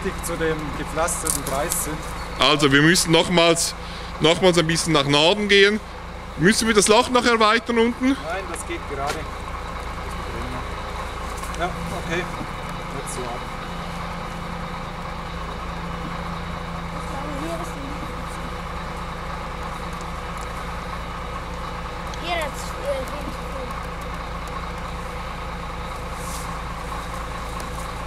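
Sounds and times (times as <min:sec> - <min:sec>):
crane engine idling: 0:00.0 - 0:28.0.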